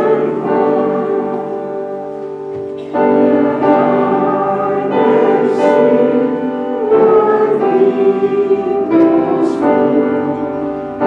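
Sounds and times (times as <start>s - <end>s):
congregation singing: 0.0s - 11.0s
keyboard accompaniment: 0.0s - 11.0s.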